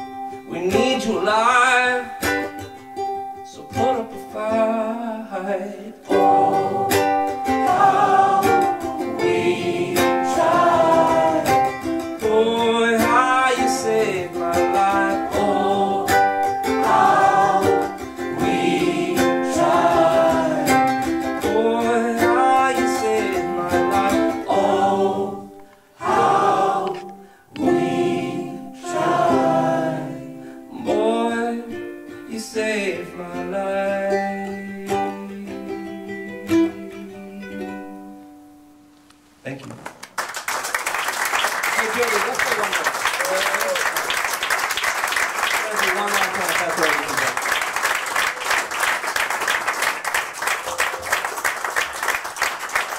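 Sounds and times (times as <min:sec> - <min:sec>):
strummed ukulele: 0:00.0 - 0:38.9, 0:45.2 - 0:52.9
man singing: 0:00.5 - 0:02.3, 0:03.5 - 0:07.8, 0:11.3 - 0:16.3, 0:19.2 - 0:25.5, 0:30.7 - 0:37.8.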